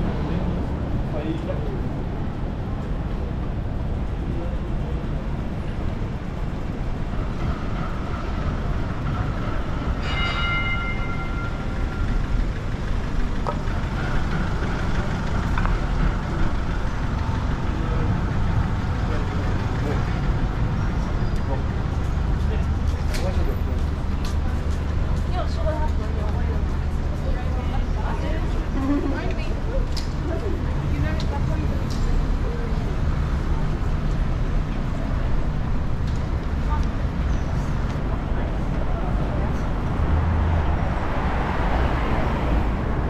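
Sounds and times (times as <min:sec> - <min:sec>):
street traffic rumbling: 0:00.0 - 0:43.0
vehicle engine drone: 0:00.0 - 0:43.0.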